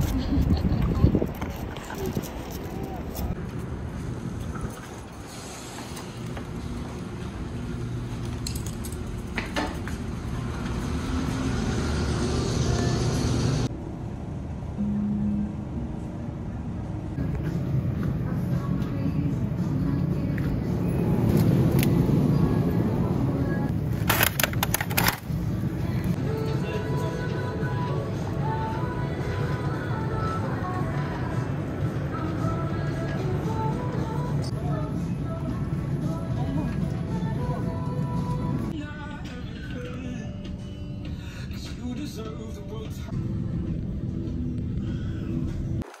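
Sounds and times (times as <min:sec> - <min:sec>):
packages placed in plastic basket: 0:24.0 - 0:25.3
background music: 0:25.5 - 0:45.8.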